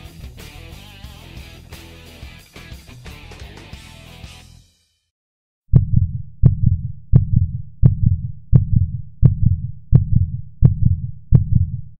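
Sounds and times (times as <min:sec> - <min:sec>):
heartbeat thumps: 0:05.7 - 0:12.0.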